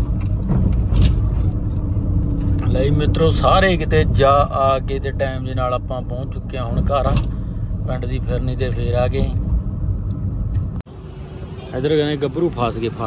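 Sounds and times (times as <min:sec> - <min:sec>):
car rumble inside cabin: 0:00.0 - 0:13.0
outdoor street ambience: 0:00.0 - 0:13.0
man talking: 0:02.6 - 0:07.2, 0:07.8 - 0:09.4, 0:11.7 - 0:13.0.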